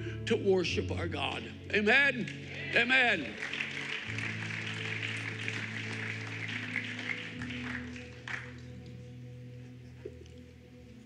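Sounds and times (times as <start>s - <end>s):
keyboard sustained chords: 0.0s - 11.0s
scattered applause: 2.5s - 8.9s.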